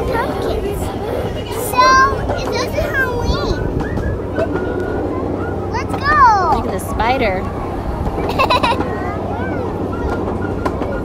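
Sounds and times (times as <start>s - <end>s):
children calling out: 0.0s - 6.8s, 8.0s - 11.0s
low rumble of ride: 0.0s - 11.0s.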